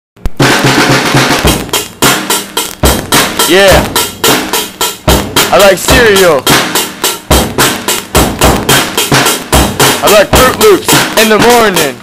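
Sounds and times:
fast drum kit beat: 0:00.2 - 0:12.0.

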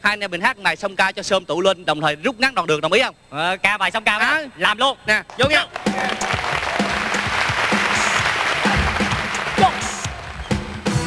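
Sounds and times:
studio audience applauding: 0:05.3 - 0:11.0
band playing music: 0:05.8 - 0:11.0.

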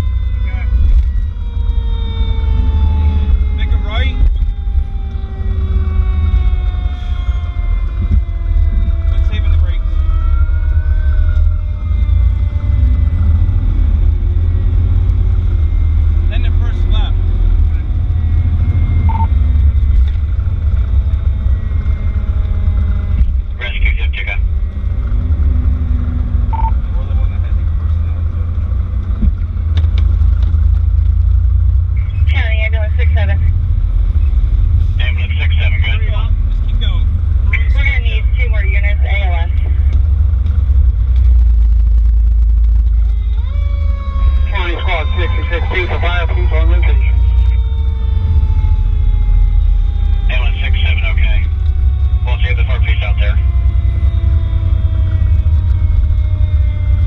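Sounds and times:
siren winding down: 0:00.0 - 0:29.6, 0:32.0 - 0:57.0
truck engine and road rumble: 0:00.0 - 0:57.0.

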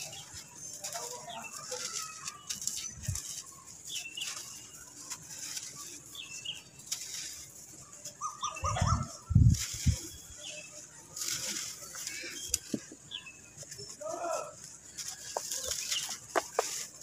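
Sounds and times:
grains trickling onto sand: 0:00.0 - 0:17.0
sand crushed by hand: 0:13.9 - 0:17.0.

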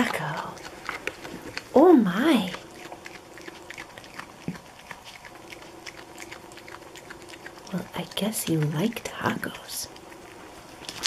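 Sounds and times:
animal crunching taco shell: 0:00.0 - 0:11.0
faint steady hum: 0:00.0 - 0:11.0.

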